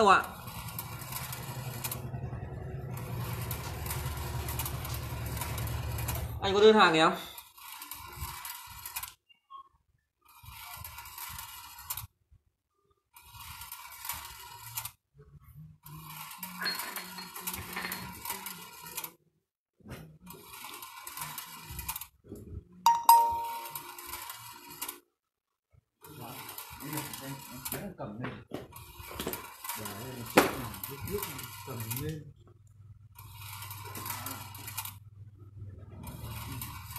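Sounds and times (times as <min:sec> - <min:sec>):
balls rattling along wire rails: 0:00.0 - 0:02.1, 0:15.9 - 0:19.1, 0:28.7 - 0:32.2
ringing ding: 0:22.9 - 0:23.8.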